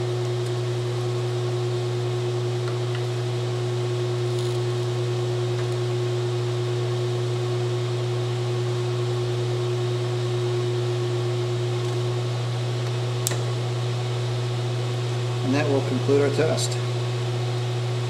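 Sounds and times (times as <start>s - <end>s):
induction heater hum: 0.0s - 18.0s
sharp click: 13.2s - 13.4s.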